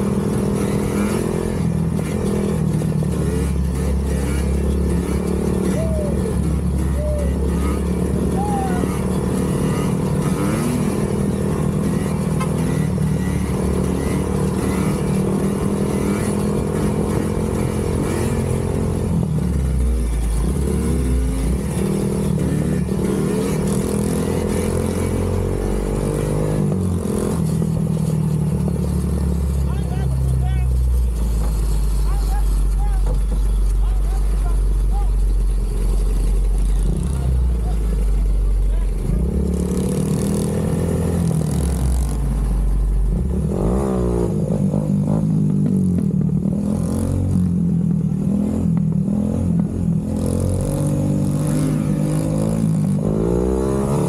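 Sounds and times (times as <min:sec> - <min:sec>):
atv and dirt bike engines revving: 0:00.0 - 0:54.0.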